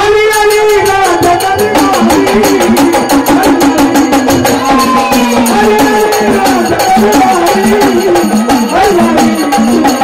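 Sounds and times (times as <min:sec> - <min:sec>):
fast percussion beat: 0:00.0 - 0:10.0
held melodic tone: 0:00.7 - 0:10.0.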